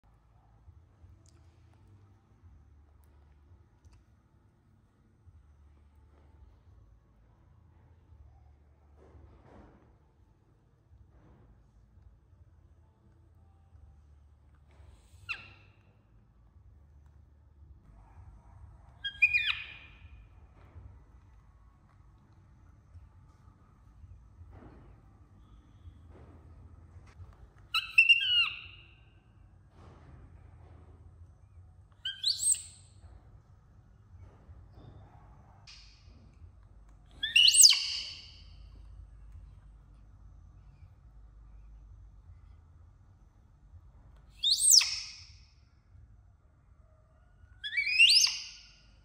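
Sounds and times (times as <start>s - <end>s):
baby monkey high calls: 19.0s - 20.1s, 27.7s - 28.9s, 32.0s - 32.8s, 37.2s - 38.4s, 44.4s - 45.3s, 47.6s - 48.7s.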